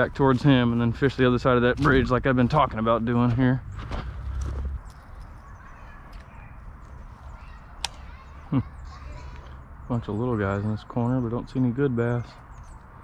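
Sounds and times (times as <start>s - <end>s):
faint bird chirps: 4.7s - 13.0s.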